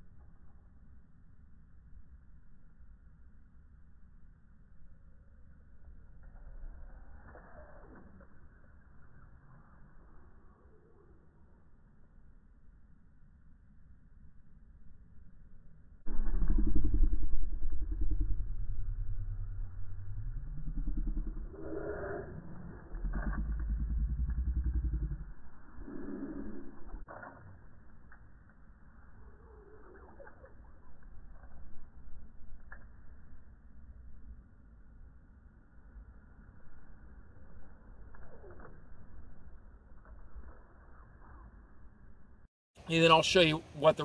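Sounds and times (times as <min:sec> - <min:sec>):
steady low rumble: 0:08.0 - 0:27.1.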